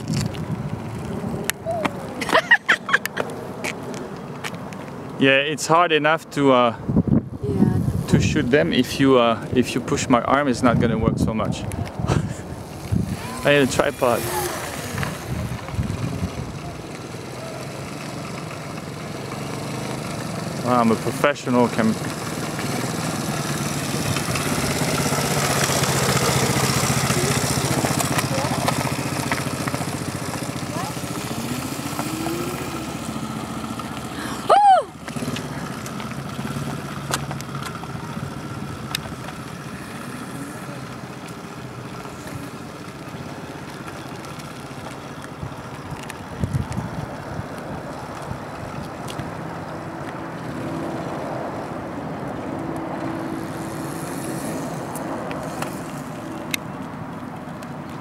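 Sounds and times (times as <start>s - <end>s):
quad bike engine running: 7.5s - 58.0s.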